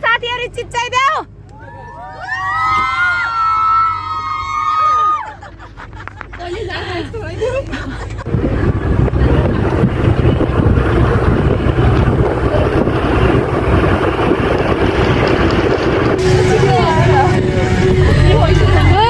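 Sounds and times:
bus road and wind noise: 0:00.0 - 0:19.0
voices: 0:00.0 - 0:19.0.

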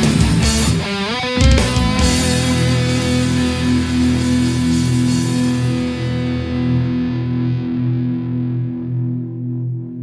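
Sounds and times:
distorted electric guitar chord: 0:01.4 - 0:07.9.

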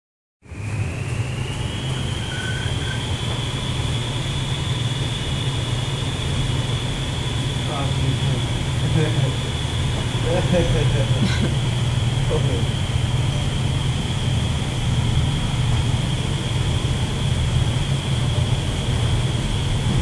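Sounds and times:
wind tunnel air rushing: 0:00.4 - 0:20.0.

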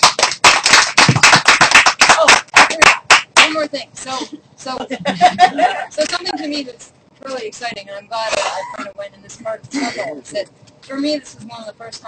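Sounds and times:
people clapping: 0:00.0 - 0:03.6.

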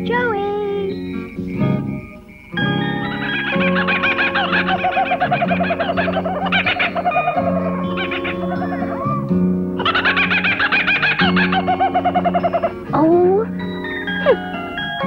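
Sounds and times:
background music: 0:00.0 - 0:15.0
kookaburra laughing: 0:00.9 - 0:13.4.

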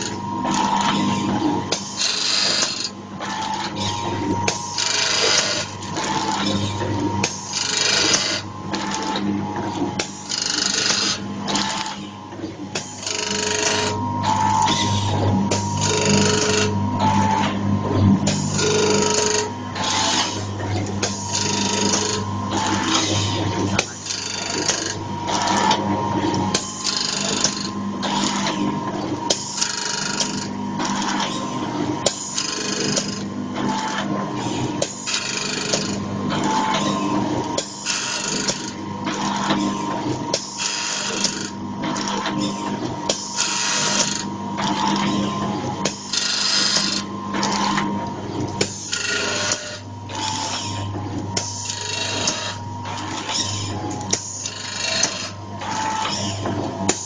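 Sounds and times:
motor hum and whine: 0:00.0 - 0:57.0.

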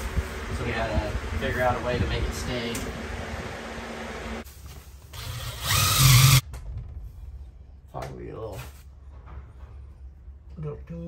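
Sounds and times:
box fan running: 0:00.0 - 0:04.4
power drill whining: 0:05.1 - 0:06.4.

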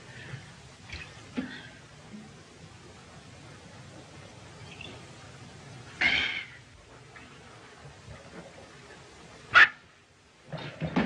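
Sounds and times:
noise: 0:00.0 - 0:11.0.

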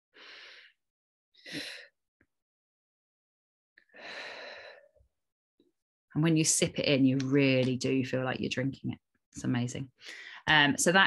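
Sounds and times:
woman breathing in: 0:00.2 - 0:00.8, 0:04.0 - 0:05.0, 0:10.0 - 0:10.4.

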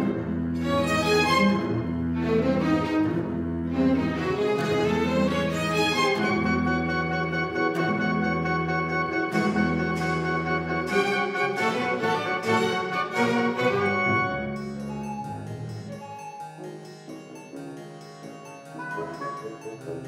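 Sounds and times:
held low string tones: 0:00.0 - 0:20.0
plucked double bass notes: 0:00.0 - 0:20.0.

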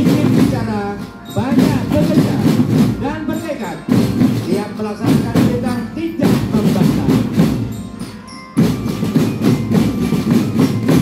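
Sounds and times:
snare and tenor drums rolling: 0:00.0 - 0:08.0, 0:08.6 - 0:11.0.

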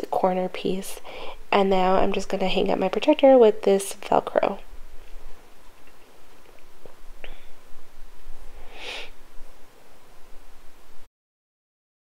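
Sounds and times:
low room hum: 0:00.0 - 0:11.1.

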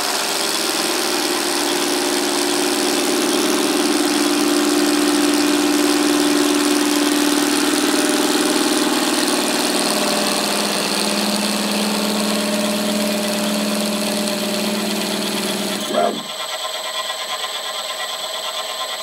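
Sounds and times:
spindle motor humming: 0:00.0 - 0:18.7.

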